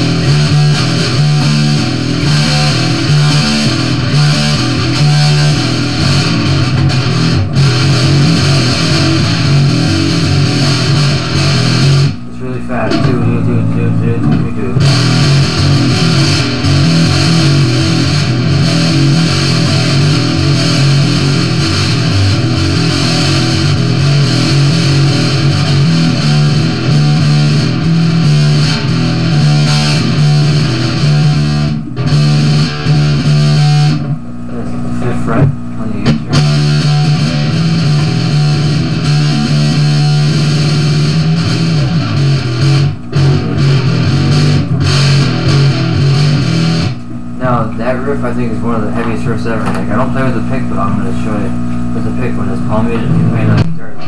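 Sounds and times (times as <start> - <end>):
electric bass guitar riff: 0.0 - 54.0.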